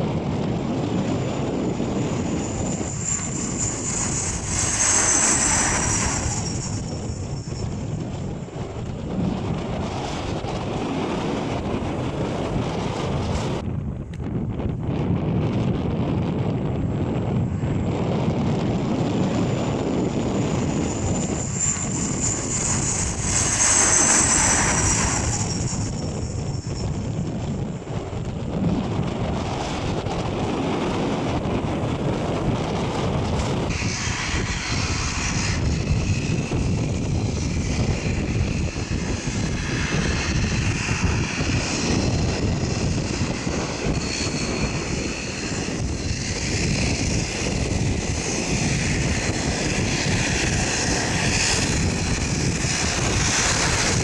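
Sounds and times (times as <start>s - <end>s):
turboprop airliner passing low: 0.0s - 54.0s
wind on microphone: 0.0s - 54.0s.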